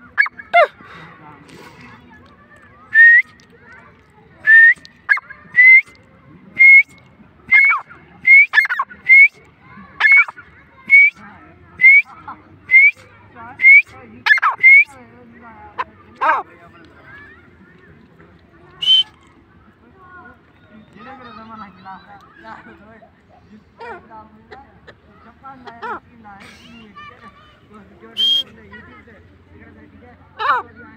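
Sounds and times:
bird calling sharp notes: 0.0 - 0.7, 6.6 - 6.9, 7.5 - 9.3, 10.0 - 11.2, 12.7 - 13.0, 13.6 - 14.9, 18.8 - 19.2, 28.2 - 28.4.

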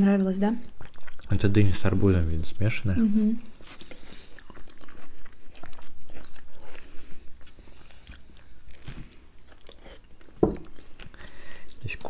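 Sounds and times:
chewing and biting fruit: 0.6 - 12.0.

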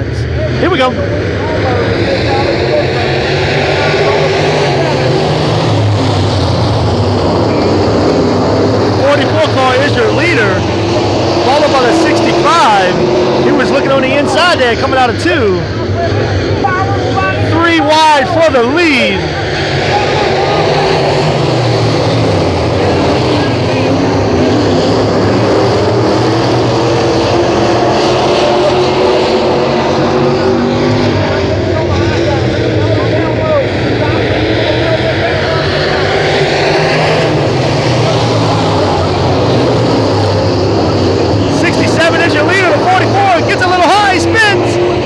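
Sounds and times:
race car engines at speed: 0.0 - 45.0
voices: 8.9 - 21.9, 27.4 - 45.0.

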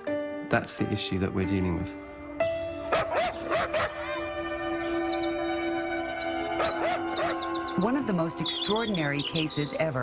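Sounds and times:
background music with drone: 1.8 - 10.0
high bird chirps: 2.6 - 10.0
dog-like barks: 2.9 - 4.2, 6.6 - 7.4.

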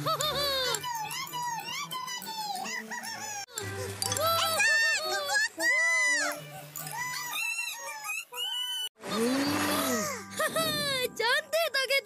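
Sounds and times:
high-pitched wordless cries: 0.0 - 11.8.

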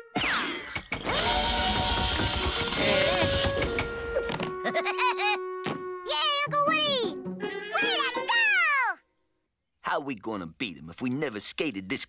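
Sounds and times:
cartoon music: 2.7 - 8.9
sharp thunk: 5.6 - 5.9.

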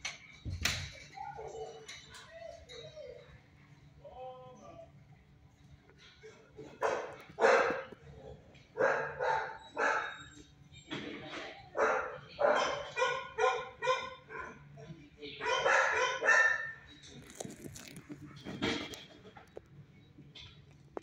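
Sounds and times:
dog barking: 6.6 - 10.4, 11.7 - 14.6, 15.4 - 16.8.

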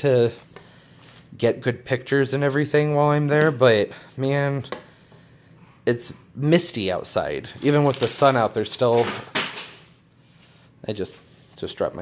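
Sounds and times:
keys dropped clattering: 7.6 - 10.0.

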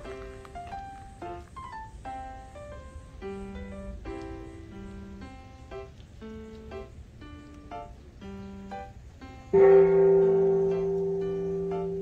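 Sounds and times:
loud low ringing note: 9.6 - 12.0
plucked string music: 9.6 - 12.0.

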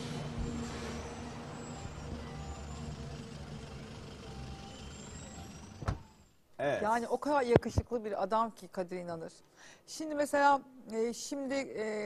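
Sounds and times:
road vehicle engines rumbling: 0.0 - 6.3.

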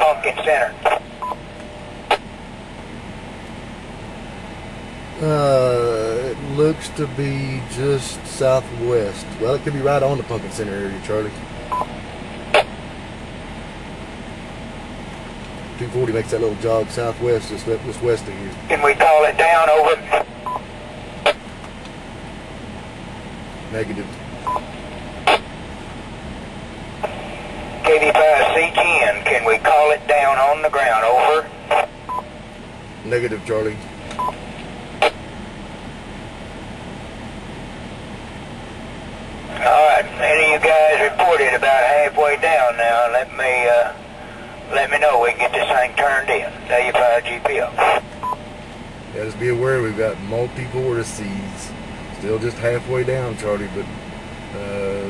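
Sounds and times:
two-way radio squelch burst: 0.0 - 1.4, 24.5 - 25.5, 27.0 - 32.3, 39.5 - 48.4
radio background hiss: 0.0 - 2.4, 5.2 - 12.9, 15.5 - 21.6, 23.6 - 25.6, 26.9 - 32.2, 32.8 - 35.4, 39.4 - 55.0
vehicle engine running in cabin: 0.0 - 55.0
short radio beep: 24.4 - 24.7.

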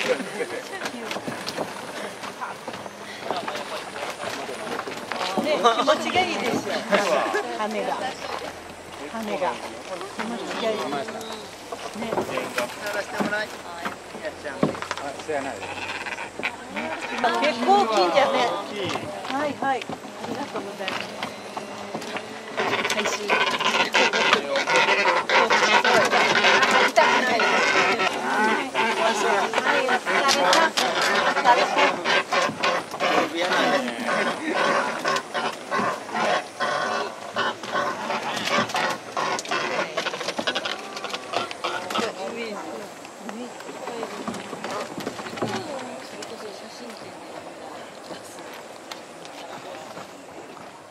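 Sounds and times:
people talking: 0.0 - 15.8, 16.4 - 35.1, 37.9 - 48.7
cormorants calling: 0.0 - 50.9
river noise: 0.0 - 50.9
light clicks and knocks from boat: 43.0 - 47.4.

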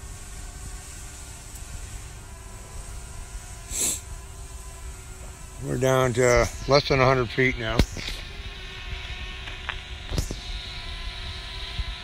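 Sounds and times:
drone propellers humming: 0.0 - 12.0
wind rumbling on microphone: 4.9 - 12.0.

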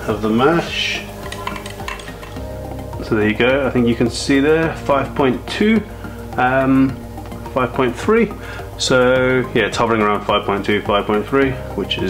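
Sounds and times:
quiet background music: 0.0 - 12.0.

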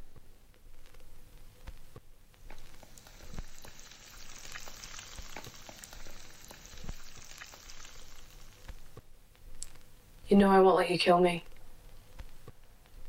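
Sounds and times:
light drips and ticks: 2.4 - 9.0
rain hissing: 2.5 - 9.0.

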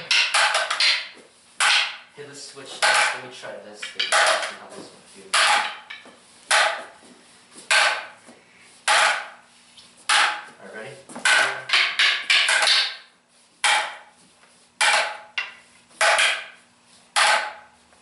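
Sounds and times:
wooden sticks clacking together: 0.0 - 2.0, 2.8 - 3.2, 3.8 - 4.6, 5.3 - 6.9, 10.1 - 10.5, 11.2 - 14.0.

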